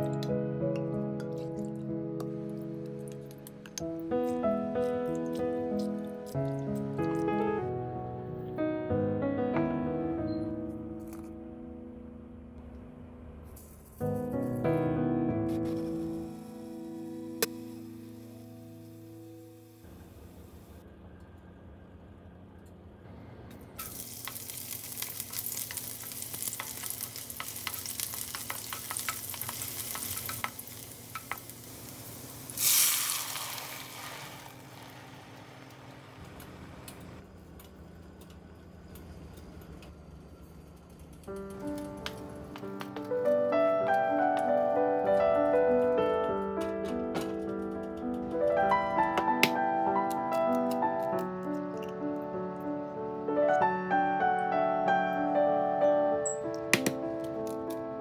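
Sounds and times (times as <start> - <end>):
piano music: 0.0 - 20.1, 41.3 - 58.0
onion sizzling in hot oil: 23.8 - 35.8
loud surge of sizzling: 23.8 - 36.2.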